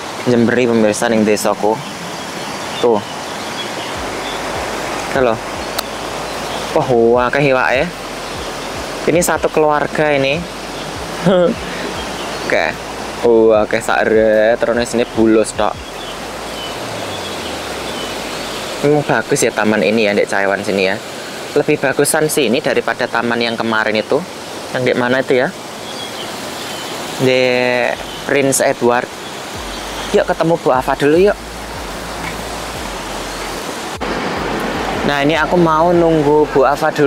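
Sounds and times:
running water hissing: 0.0 - 37.0
steady rushing outdoor noise: 0.0 - 37.0.

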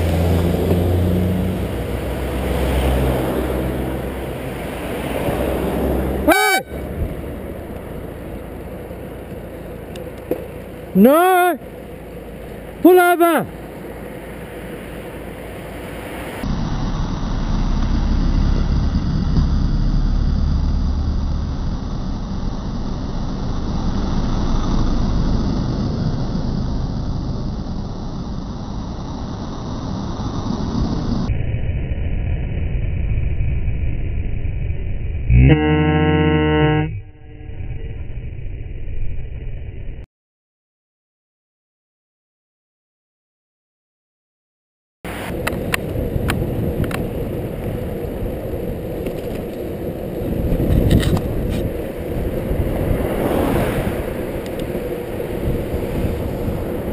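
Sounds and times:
car drawing away: 0.0 - 31.3, 45.1 - 56.9
road and wind noise: 0.0 - 40.1, 45.0 - 56.9
loud car horn blast: 6.2 - 6.9, 35.3 - 37.7.

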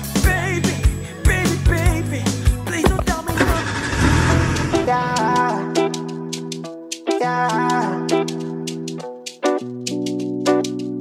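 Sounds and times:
background music with singing: 0.0 - 11.0
plucked-string music: 2.6 - 11.0.

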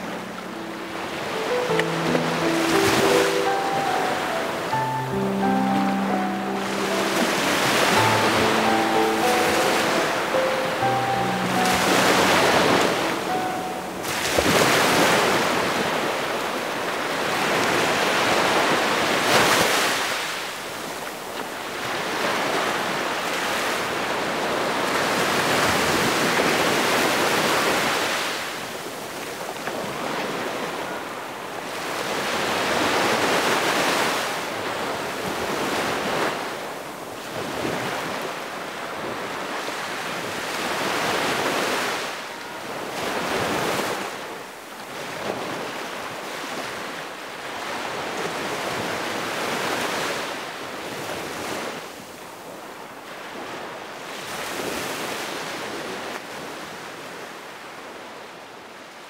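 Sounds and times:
sea waves washing in: 0.0 - 57.7.

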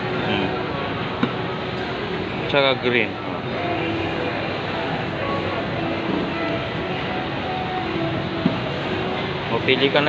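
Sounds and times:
shopping mall din: 0.0 - 10.0.

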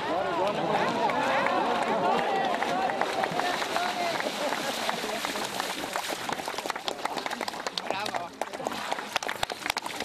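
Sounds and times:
footsteps splashing through water: 0.8 - 10.0.

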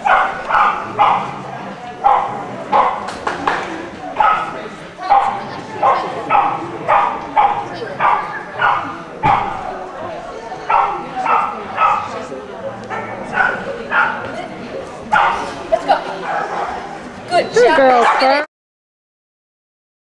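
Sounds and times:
small dog barking: 0.0 - 1.4, 2.0 - 3.0, 4.2 - 4.5, 5.1 - 9.6, 10.7 - 12.1, 12.9 - 14.3, 15.2 - 15.5.

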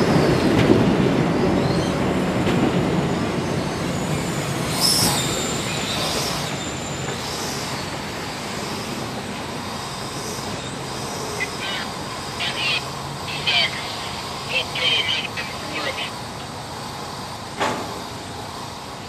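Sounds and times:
passenger train rolling: 0.0 - 19.0
wheel and brake squeals: 3.0 - 12.3.

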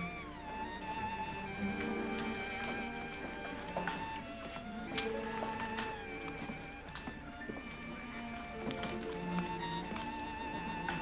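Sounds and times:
violin music: 0.0 - 11.0.

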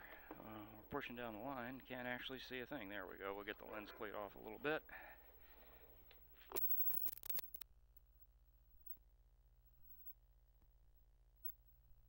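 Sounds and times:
low electrical hum: 0.0 - 12.0
sharp clicks and scrapes: 6.1 - 7.7.

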